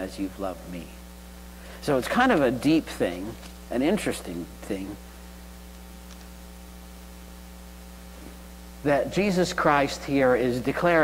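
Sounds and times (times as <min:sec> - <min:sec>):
electrical mains hum: 0:00.0 - 0:11.0
man's voice: 0:01.8 - 0:05.0, 0:08.8 - 0:11.0.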